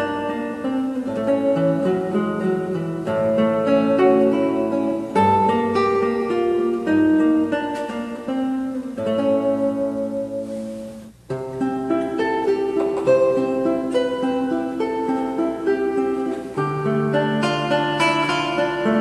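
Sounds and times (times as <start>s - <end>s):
fingerpicked classical guitar: 0.0s - 19.0s.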